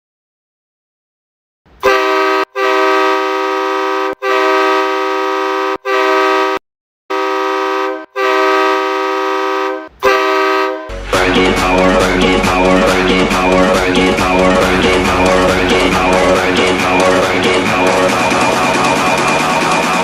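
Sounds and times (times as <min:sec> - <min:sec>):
air horn chord blasts: 0:01.8 - 0:18.9.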